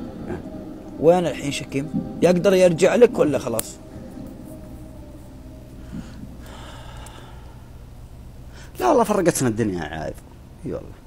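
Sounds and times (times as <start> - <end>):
steady low hum: 0.0 - 11.0
man breathing: 5.7 - 8.8.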